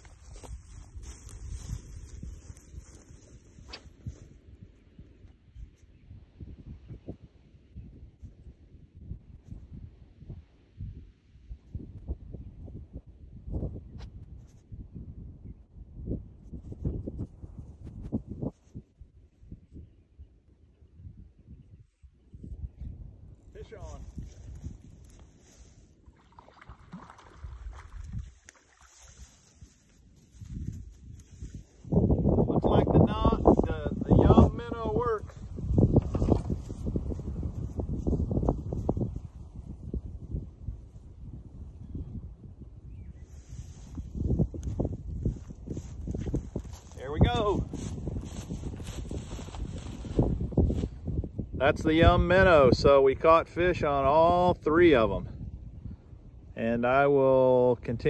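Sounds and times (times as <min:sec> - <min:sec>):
wind rumbling on microphone: 0:00.0 - 0:58.0
man's voice: 0:32.5 - 0:35.3, 0:47.0 - 0:47.6, 0:56.6 - 0:58.0.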